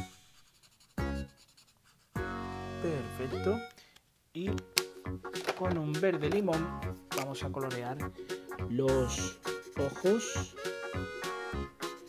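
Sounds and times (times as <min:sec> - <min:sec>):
marker scratching on paper: 0:00.0 - 0:02.3, 0:09.1 - 0:10.7
background music notes: 0:02.2 - 0:12.0.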